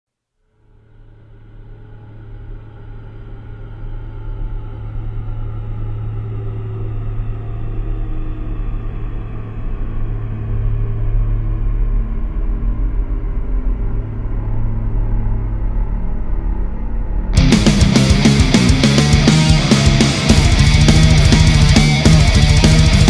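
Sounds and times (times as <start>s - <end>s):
low rumbling drone: 1.1s - 23.0s.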